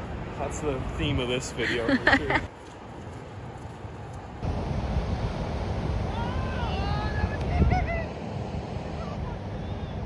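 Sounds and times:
faint outdoor hiss: 0.0s - 10.0s.

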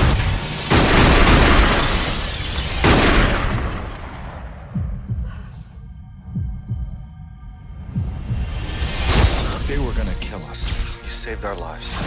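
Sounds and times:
low paired thumps: 3.5s - 9.1s.

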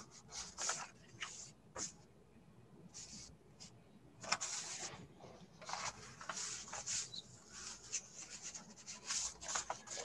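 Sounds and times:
soft rubbing and scratching: 0.0s - 2.0s, 2.9s - 10.0s.

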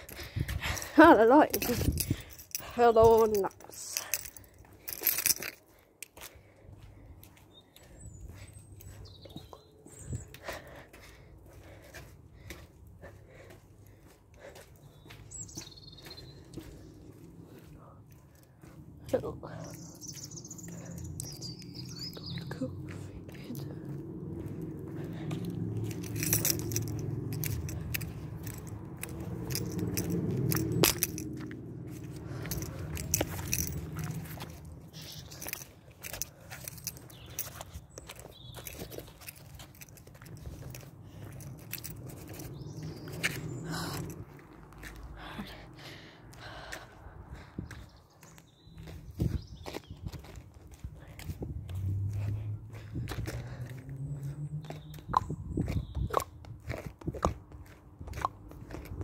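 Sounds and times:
footsteps on pavement and grass: 0.0s - 59.0s.

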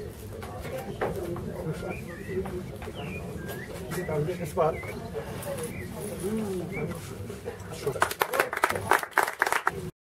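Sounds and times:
people talking: 0.0s - 10.0s
birds chirping: 0.6s - 8.0s.

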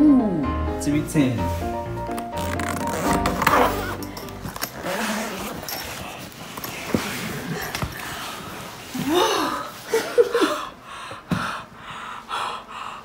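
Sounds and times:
background music: 0.0s - 5.6s
rustling: 1.4s - 9.1s
suitcase zipper opening: 2.0s - 8.0s.

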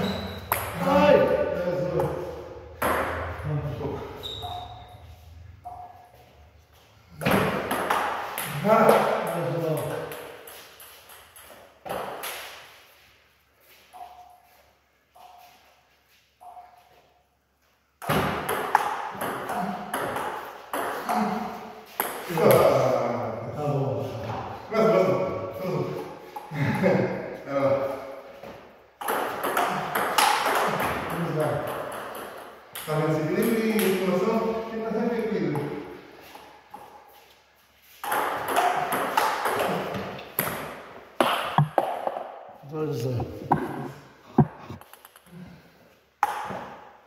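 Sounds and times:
ping pong ball hitting paddles and table: 0.0s - 6.2s, 7.2s - 12.6s, 13.9s - 14.5s, 16.4s - 17.0s, 18.0s - 22.9s, 26.0s - 26.6s, 28.3s - 37.2s, 37.9s - 42.5s, 43.2s - 45.3s, 46.2s - 47.0s.

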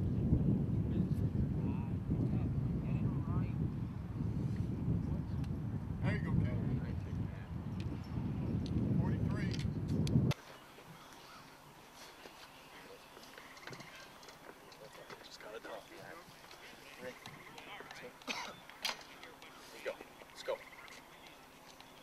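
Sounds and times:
wind buffeting microphone: 0.0s - 12.0s
faint distant chatter: 10.4s - 22.0s.

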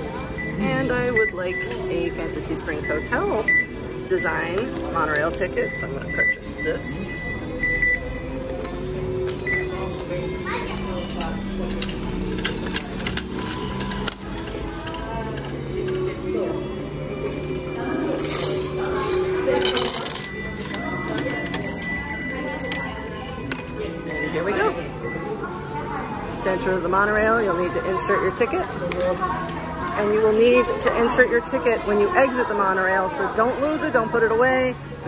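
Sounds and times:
background music: 0.0s - 35.0s
voices: 0.0s - 35.0s
ticket machine clicks: 7.8s - 16.3s, 17.2s - 24.5s.

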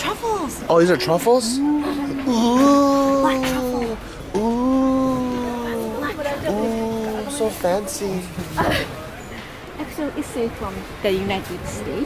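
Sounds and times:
person saying ooh in admiration: 1.4s - 7.2s.

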